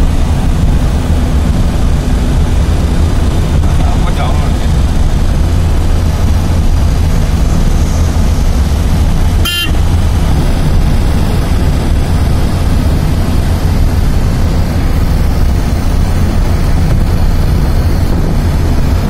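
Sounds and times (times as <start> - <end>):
vehicle engine and road noise: 0.0 - 19.0
short horn toot: 9.4 - 9.9.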